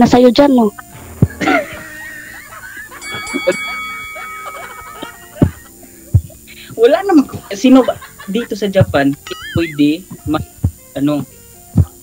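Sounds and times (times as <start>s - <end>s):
background music sustained notes: 0.0s - 12.0s
faint laughter: 1.4s - 6.4s, 9.2s - 9.9s.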